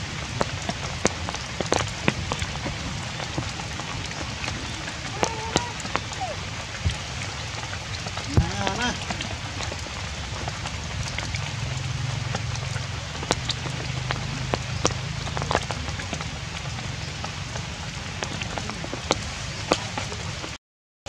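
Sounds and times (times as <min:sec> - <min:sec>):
steady rain falling: 0:00.0 - 0:20.6.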